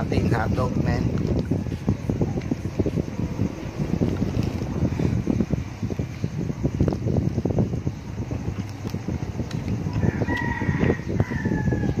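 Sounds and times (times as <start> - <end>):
rooster crowing: 9.8 - 12.0.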